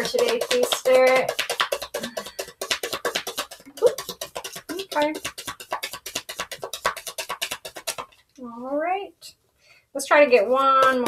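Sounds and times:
cards being shuffled: 0.0 - 8.3.

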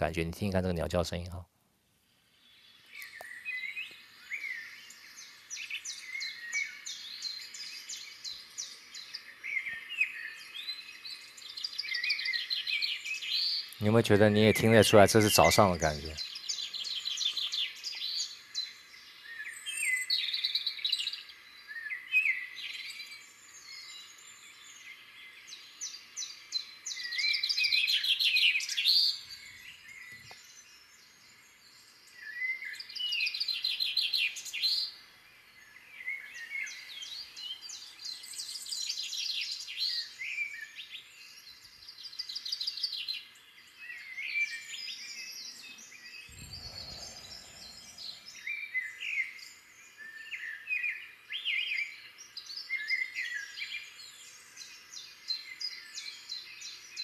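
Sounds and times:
songbirds singing and chirping: 0.0 - 57.0
faint steady hiss: 45.0 - 50.1.

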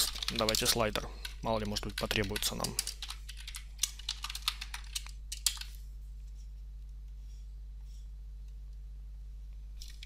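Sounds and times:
keyboard typing: 0.0 - 5.8.

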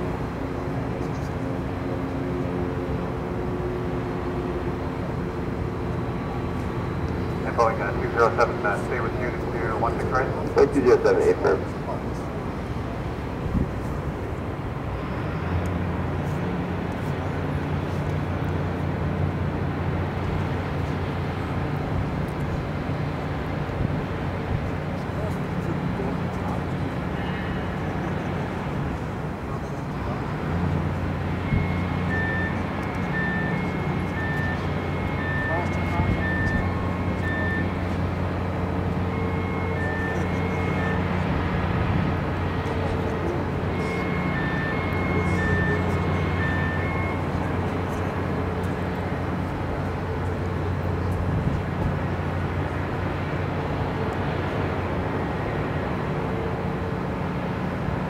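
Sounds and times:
diesel engine humming: 0.0 - 58.0
two-tone electronic warning beeper: 6.9 - 12.0, 31.1 - 50.2.

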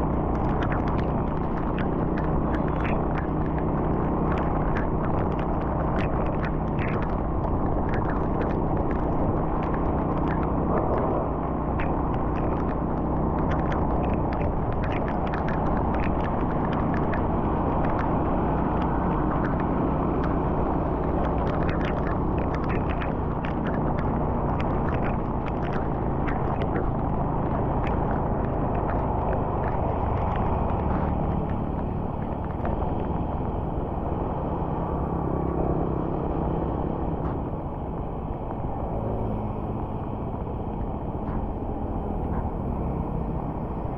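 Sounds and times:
engine hum: 0.0 - 43.9
tyre and wind rumble: 0.0 - 43.9
sharp ticks: 21.0 - 32.8.

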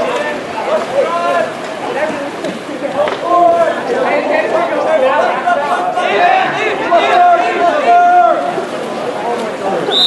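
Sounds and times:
people calling out and chattering: 0.0 - 10.0.

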